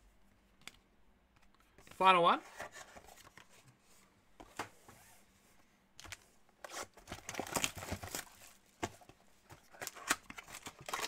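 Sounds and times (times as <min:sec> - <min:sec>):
foil wrapper crinkling and tearing: 0:09.7 - 0:11.0.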